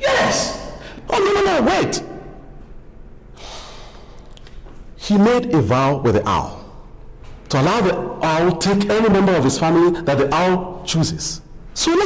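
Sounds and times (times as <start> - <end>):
man breathing out heavily: 3.4 - 4.2.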